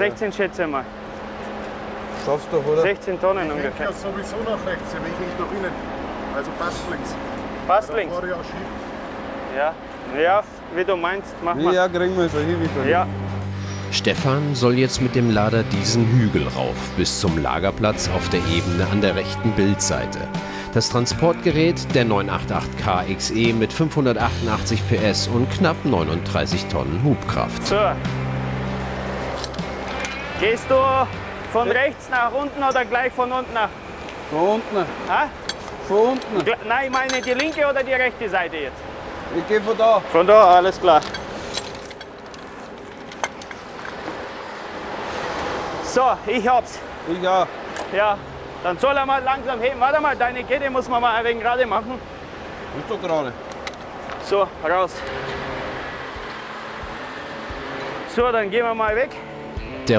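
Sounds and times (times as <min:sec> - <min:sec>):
wheel loader engine drone: 0:00.0 - 0:36.7, 0:54.6 - 0:58.2
steady background noise: 0:00.0 - 0:59.9
background music: 0:11.3 - 0:34.1, 0:54.7 - 0:59.9
metallic chain clink: 0:29.3 - 0:30.3, 0:35.4 - 0:37.8, 0:40.4 - 0:44.0, 0:53.0 - 0:54.2.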